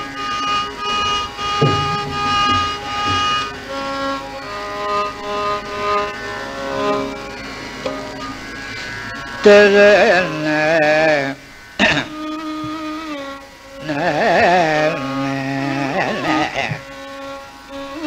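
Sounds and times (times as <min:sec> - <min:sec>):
held melodic notes: 0:00.0 - 0:04.4
steady drone: 0:00.7 - 0:04.3
drum strokes with falling pitch: 0:01.3 - 0:04.2.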